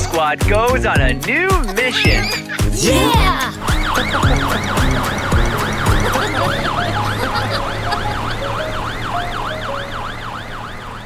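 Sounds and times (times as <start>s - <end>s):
fire engine siren wailing: 3.5s - 11.0s.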